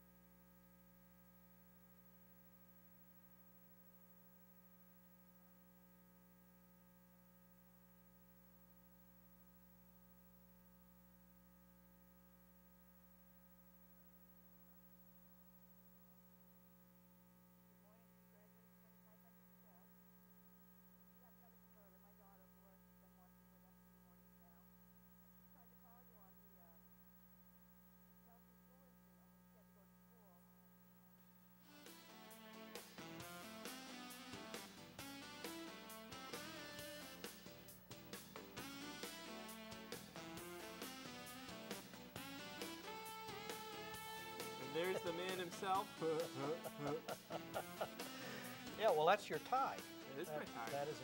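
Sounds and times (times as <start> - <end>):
faint electrical hum: 0.0 - 51.0.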